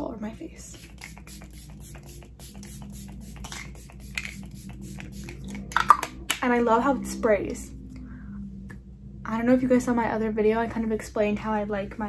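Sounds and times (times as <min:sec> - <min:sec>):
soft background music: 0:00.0 - 0:12.0
spray bottle hisses: 0:00.8 - 0:05.4.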